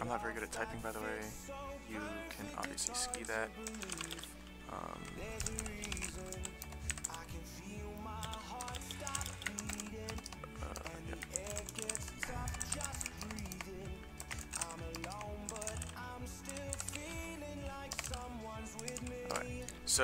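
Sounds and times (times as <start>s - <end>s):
background music: 0.0s - 20.0s
keyboard typing: 2.3s - 20.0s.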